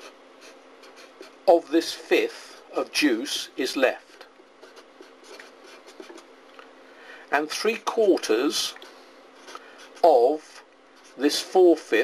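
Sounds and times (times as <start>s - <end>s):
marker pen scratching on paper: 0.0s - 2.3s, 3.4s - 6.3s, 9.4s - 11.6s.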